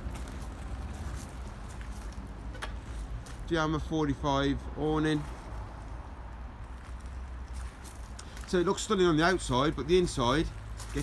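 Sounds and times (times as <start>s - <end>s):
footsteps crunching on gravel: 0.0s - 3.9s, 5.0s - 11.0s.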